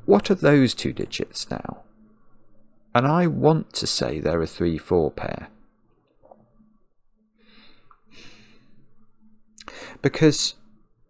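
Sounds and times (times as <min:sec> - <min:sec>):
sharp breath in: 0:07.4 - 0:08.9, 0:09.7 - 0:10.0.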